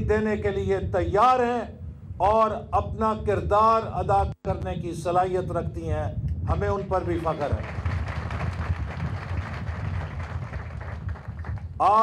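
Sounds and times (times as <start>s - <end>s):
low rumble: 0.0s - 12.0s
crowd applauding: 7.6s - 11.7s.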